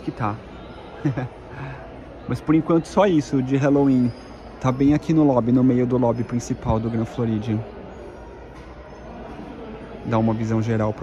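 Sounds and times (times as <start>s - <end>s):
indoor lobby hum: 0.0s - 11.0s.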